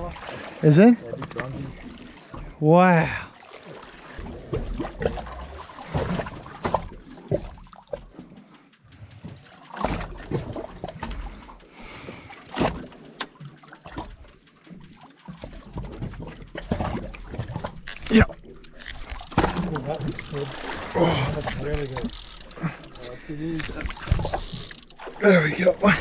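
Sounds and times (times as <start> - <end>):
water lapping against hull: 0.0 - 26.0.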